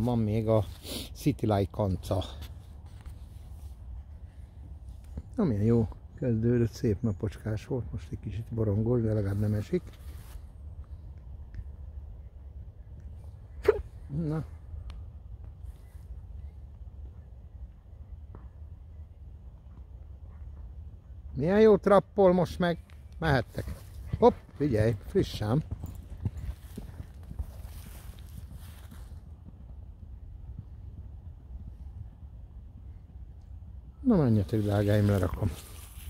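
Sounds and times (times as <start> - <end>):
wind rumbling on microphone: 22.4 - 36.0
horse hoofbeats on sand: 23.3 - 32.2.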